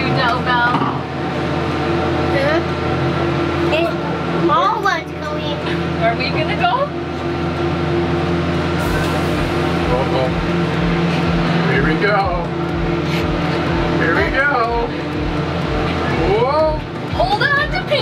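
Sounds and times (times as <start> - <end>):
cableway machinery humming: 0.0 - 18.0.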